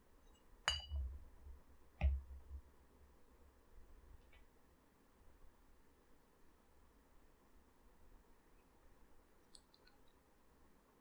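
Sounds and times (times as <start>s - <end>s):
glass bottle clinking: 0.7s - 1.0s.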